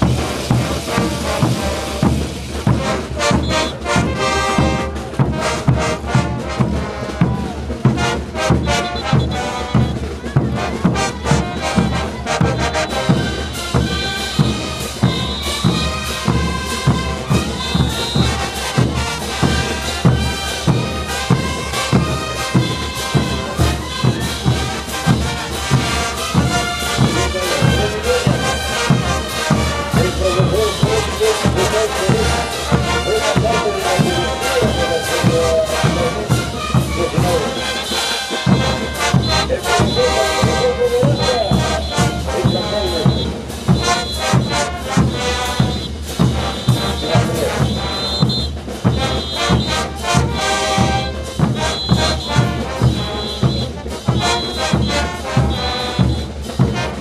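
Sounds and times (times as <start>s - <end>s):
brass band playing dance music: 0.0s - 57.0s
steady drum beat: 0.0s - 57.0s.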